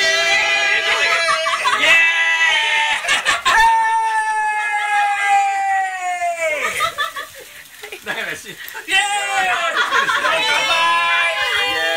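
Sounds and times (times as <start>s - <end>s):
person cheering yell: 0.0s - 6.9s, 8.8s - 11.9s
noisy voices: 0.0s - 11.9s.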